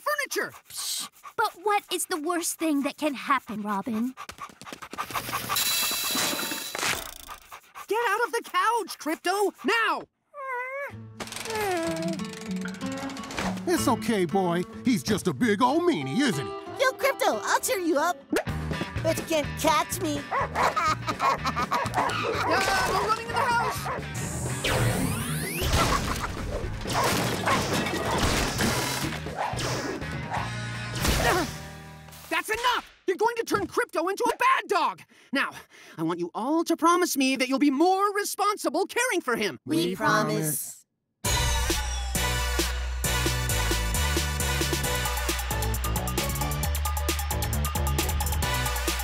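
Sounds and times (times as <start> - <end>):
cartoon dog panting: 0.0 - 6.3, 6.9 - 10.0
background music: 10.9 - 32.3, 39.7 - 49.0.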